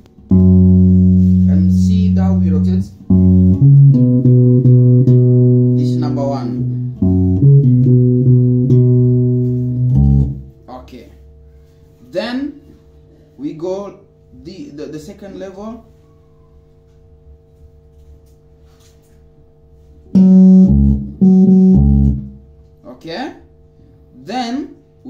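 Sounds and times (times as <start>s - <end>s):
electric bass guitar line: 0.0s - 10.7s, 20.1s - 22.6s.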